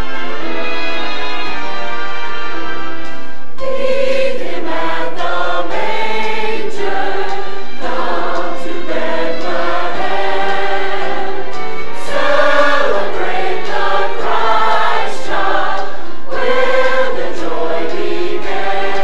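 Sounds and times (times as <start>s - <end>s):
choir singing: 3.6s - 19.0s.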